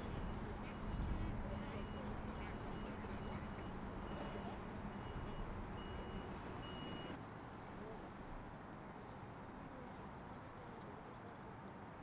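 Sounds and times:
reversing alarm beeping: 1.7s - 7.2s.

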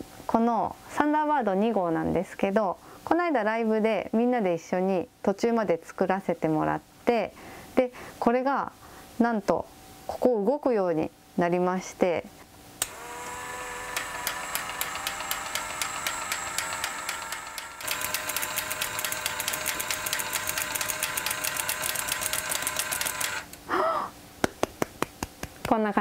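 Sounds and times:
gear clicking: 12.8s - 23.6s
small electric motor whining: 12.8s - 23.6s
hand claps: 24.4s - 25.8s.

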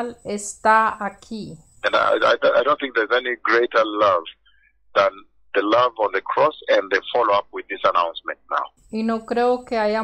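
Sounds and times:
preacher speaking: 1.8s - 4.4s, 5.0s - 9.2s.

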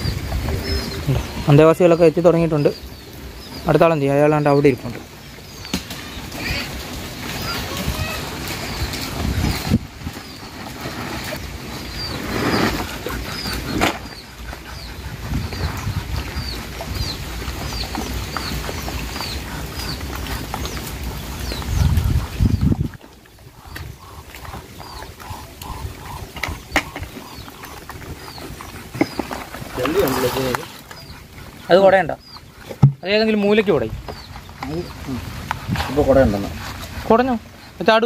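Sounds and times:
bird chirping: 0.0s - 38.0s.

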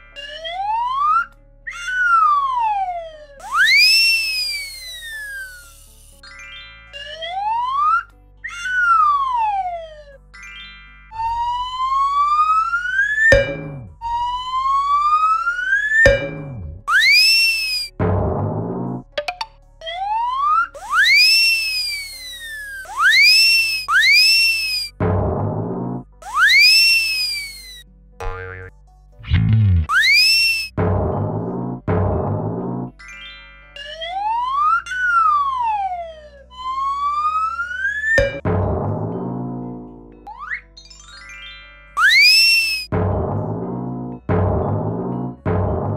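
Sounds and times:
cartoon whistles: 0.2s - 5.9s, 11.2s - 18.0s, 20.4s - 25.0s, 26.2s - 27.8s, 29.8s - 30.8s, 34.2s - 38.5s, 42.0s - 43.0s
deep falling thud: 13.3s - 14.0s, 16.1s - 16.9s, 18.0s - 18.9s, 25.0s - 25.7s, 30.7s - 32.8s, 38.2s - 39.2s, 43.0s - 43.6s
faint steady low tones: 13.3s - 14.0s, 16.0s - 16.9s.

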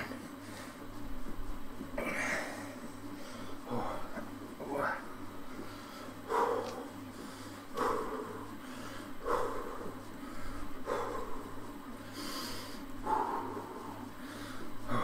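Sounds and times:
man breathing hard: 5.5s - 15.0s.

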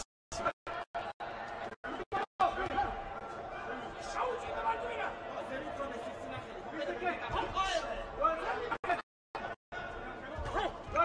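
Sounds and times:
crowd talking and calling out: 0.4s - 11.0s.

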